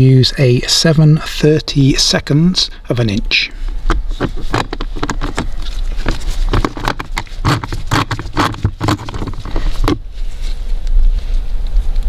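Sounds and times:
hand driver clicking and scraping: 0:03.7 - 0:10.1.

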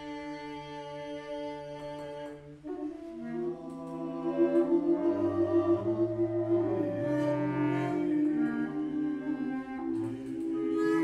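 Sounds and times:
long held wind instrument notes: 0:00.0 - 0:11.0.

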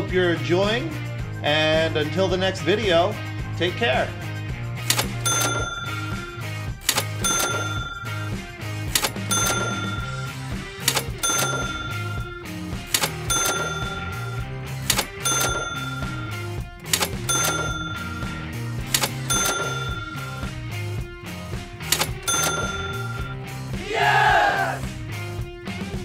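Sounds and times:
background music with steady beat: 0:00.0 - 0:26.0
cash register ka-ching: 0:04.8 - 0:20.9, 0:21.8 - 0:23.5.

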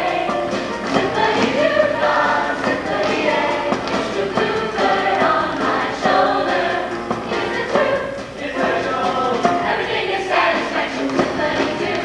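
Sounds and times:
mixed choir singing: 0:00.0 - 0:12.0.

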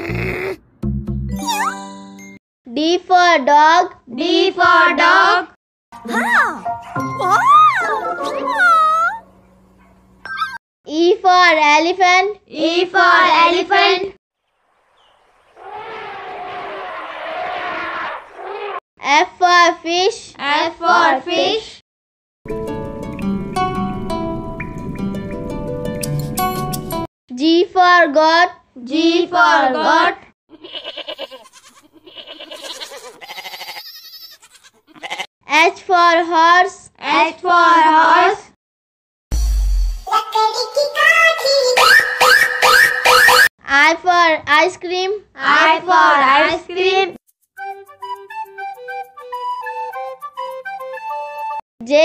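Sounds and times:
cartoon animal high-pitched cry: 0:06.1 - 0:09.2, 0:10.3 - 0:10.6, 0:30.5 - 0:35.3, 0:41.3 - 0:43.4
goat bleating: 0:30.5 - 0:35.3.

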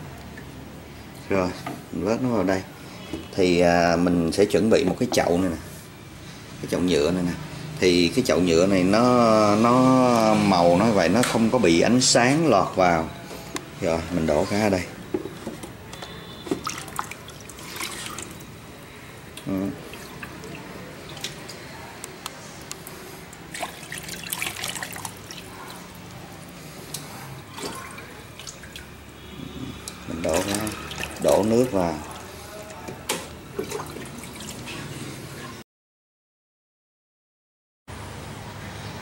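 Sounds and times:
sharp water drips: 0:16.0 - 0:18.6, 0:19.3 - 0:21.7, 0:22.6 - 0:32.8
water pouring into plastic tub: 0:16.4 - 0:18.4, 0:23.3 - 0:26.0, 0:29.8 - 0:32.8.

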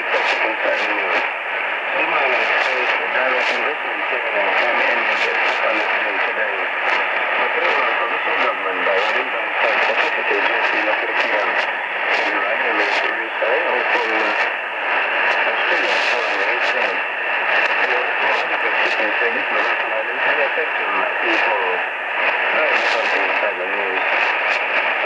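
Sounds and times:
person talking on radio: 0:00.0 - 0:25.0
radio static hiss: 0:00.0 - 0:25.0.

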